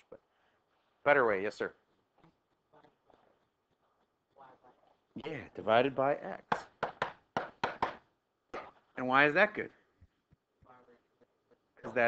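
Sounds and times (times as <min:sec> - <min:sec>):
stylus tapping and scratching: 0:01.9 - 0:05.0.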